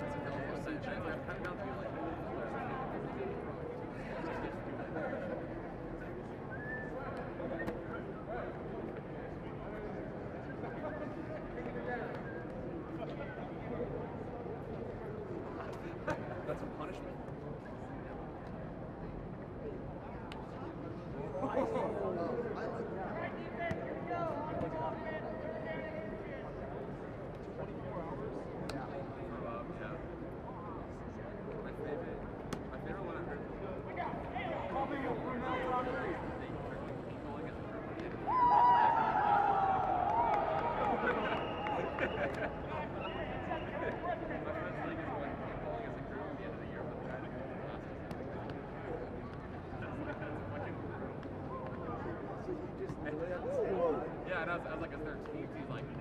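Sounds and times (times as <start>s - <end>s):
players calling out and talking: 0.0s - 56.0s
loud drawn-out shout: 38.3s - 40.8s.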